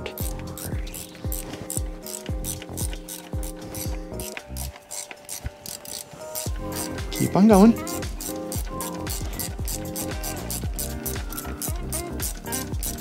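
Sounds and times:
background music with steady beat: 0.0s - 13.0s
ratchet wrench clicking: 0.0s - 13.0s.

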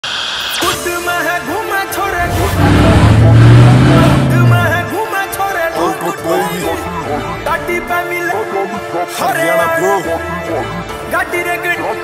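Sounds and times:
music: 0.1s - 12.0s
car engine running: 2.2s - 5.0s.

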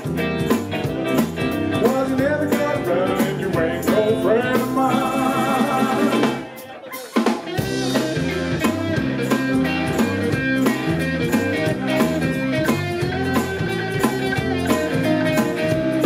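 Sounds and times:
bass line: 0.0s - 6.6s, 7.5s - 16.0s
drums: 0.0s - 16.0s
electric guitar: 0.0s - 16.0s.

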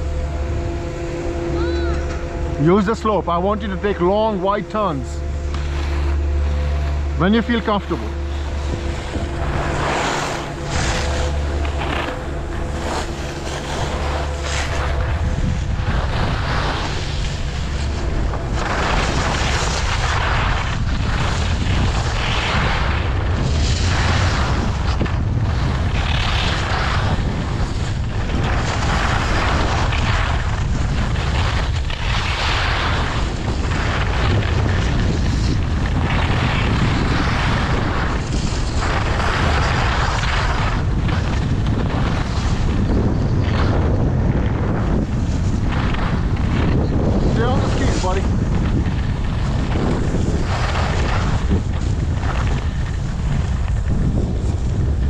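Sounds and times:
skis scraping over snow: 0.0s - 55.0s
wind rumbling on microphone: 0.0s - 55.0s.

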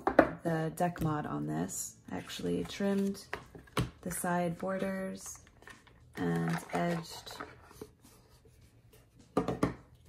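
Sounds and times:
card box knocking on wooden table: 9.4s - 9.8s.

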